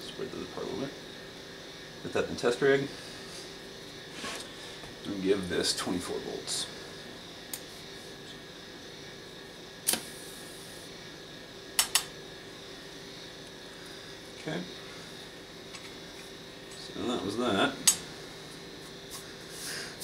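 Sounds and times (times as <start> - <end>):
steady electrical hum: 0.0 - 20.0
sharp electrical clicks: 9.8 - 10.1, 11.8 - 12.2, 17.8 - 18.0.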